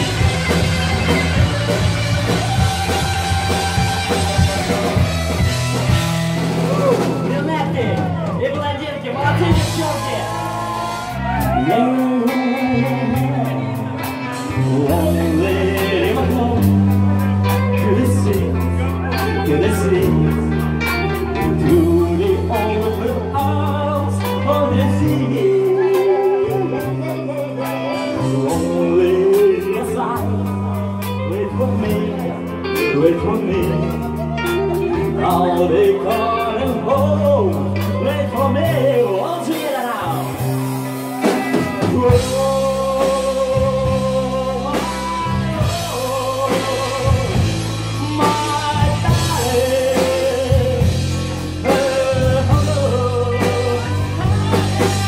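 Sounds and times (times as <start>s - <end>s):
drum beat: 0.0s - 8.7s
bass guitar: 0.0s - 55.0s
drum kit: 0.0s - 55.0s
electric guitars: 0.0s - 55.0s
man singing: 0.0s - 55.0s.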